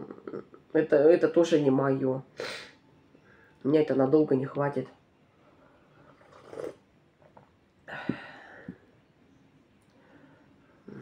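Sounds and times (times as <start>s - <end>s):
person sipping from mug: 6.0s - 6.9s.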